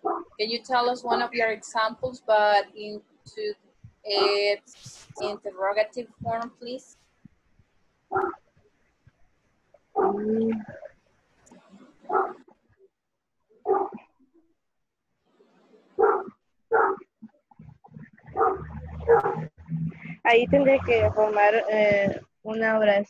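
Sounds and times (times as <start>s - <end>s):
dog barking: 12.1s - 12.4s, 13.7s - 14.0s, 16.0s - 17.0s, 18.3s - 19.5s.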